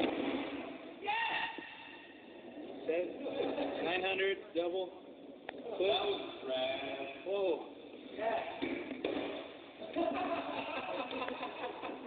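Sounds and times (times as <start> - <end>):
people talking indistinctly: 2.2 - 9.0.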